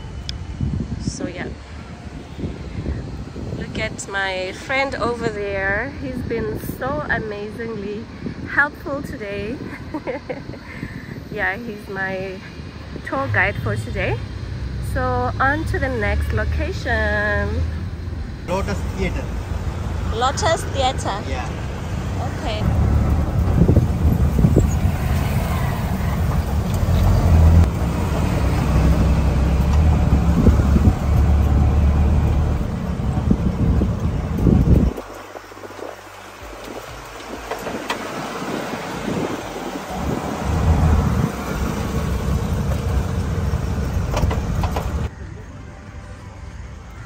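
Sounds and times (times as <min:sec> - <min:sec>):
auto rickshaw engine and road noise: 0:00.0 - 0:47.0
open-air ambience: 0:00.0 - 0:47.0.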